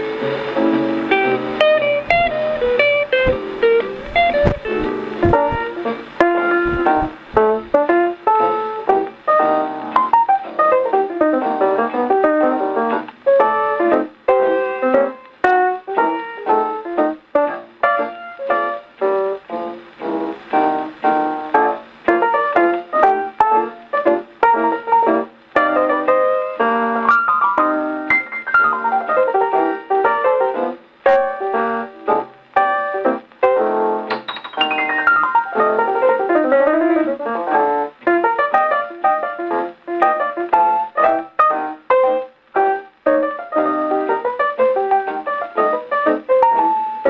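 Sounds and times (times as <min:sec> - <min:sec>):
jazz piano on phonograph record: 0:00.0 - 0:47.0.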